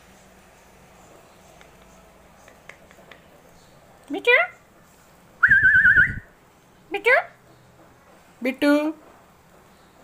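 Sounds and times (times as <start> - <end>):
whistled note: 5.4 - 6.3.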